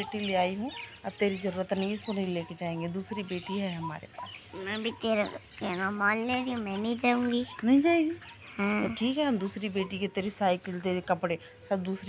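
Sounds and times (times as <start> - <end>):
woman talking: 0.0 - 12.0.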